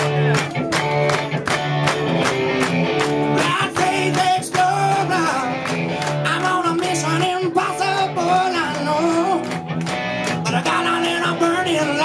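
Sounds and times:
blues-rock band playing: 0.0s - 12.0s
lead singer singing: 3.3s - 9.6s, 10.4s - 12.0s.

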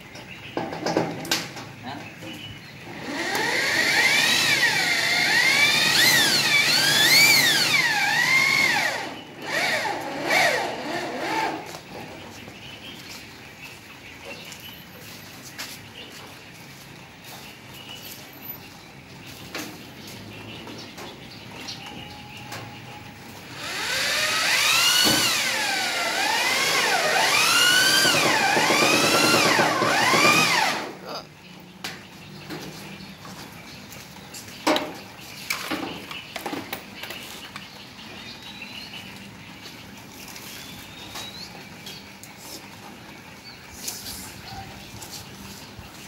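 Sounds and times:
electric drill running under load: 2.9s - 11.7s, 23.5s - 31.0s.

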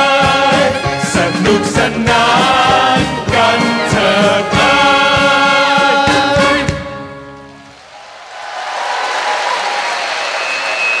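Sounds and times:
vocal group singing with band: 0.0s - 6.8s
audience applause: 7.6s - 11.0s.

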